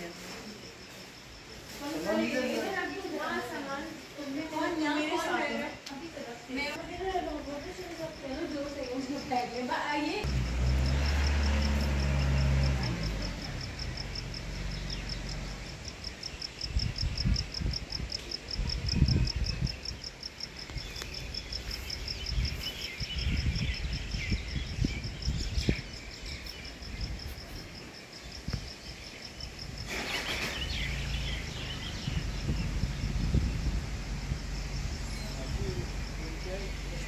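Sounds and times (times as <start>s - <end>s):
cricket chirping: 0.0s - 37.0s
low rumbling: 10.2s - 19.9s, 29.6s - 37.0s
birds twittering: 10.8s - 17.4s, 19.1s - 37.0s.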